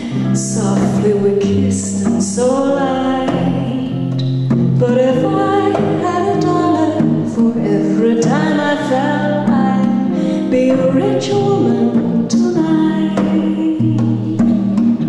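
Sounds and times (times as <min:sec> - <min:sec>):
hand drum: 0:00.0 - 0:15.0
strummed acoustic guitar: 0:00.0 - 0:15.0
woman singing folk song: 0:00.0 - 0:15.0.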